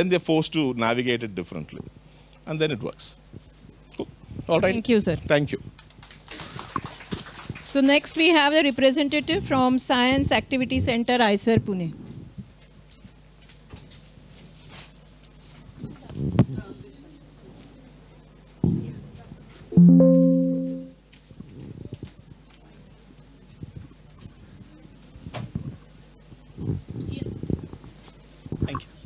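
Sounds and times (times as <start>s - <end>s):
audience clapping: 5.8s - 8.3s
chord-like musical tone: 19.8s - 21.0s.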